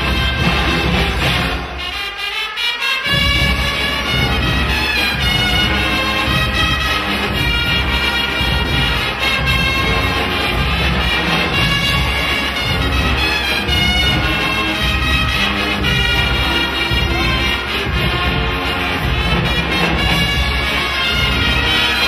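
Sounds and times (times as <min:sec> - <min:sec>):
brass band with drums: 0:00.0 - 0:22.0.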